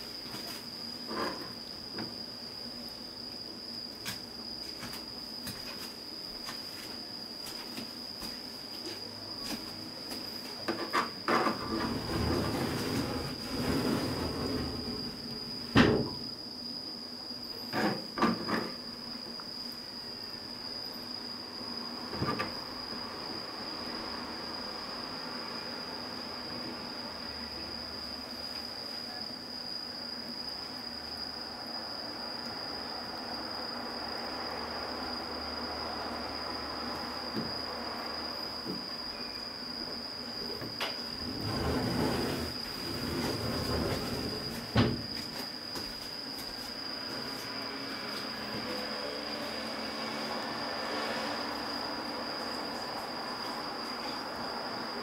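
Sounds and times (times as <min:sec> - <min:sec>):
steady high-pitched whine: 0:00.0 - 0:55.0.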